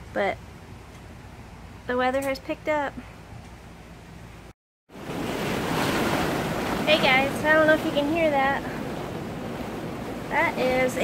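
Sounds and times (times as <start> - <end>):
storm wind rushing: 4.9 - 11.0.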